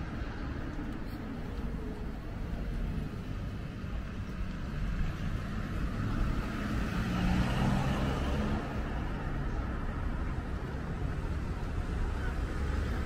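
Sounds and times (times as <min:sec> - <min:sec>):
car engine and tyre noise: 0:00.0 - 0:13.0
vehicle passing close: 0:04.5 - 0:09.6.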